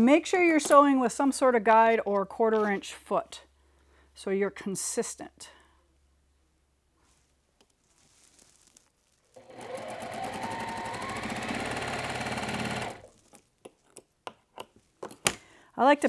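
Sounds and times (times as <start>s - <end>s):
sewing machine stitching: 9.4s - 13.2s.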